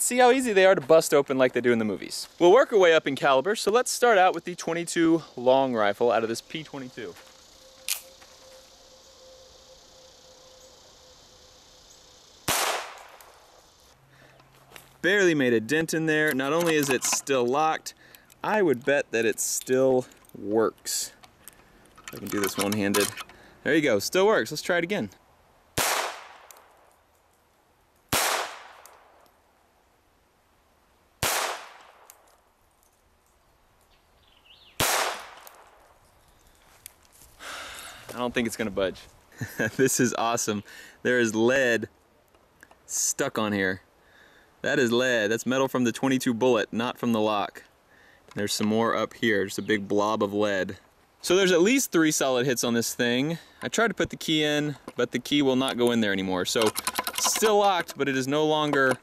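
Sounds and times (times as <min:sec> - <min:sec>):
pistol shot: 0:12.4 - 0:13.3, 0:25.8 - 0:26.5, 0:28.1 - 0:29.1, 0:31.2 - 0:32.1, 0:34.8 - 0:35.7.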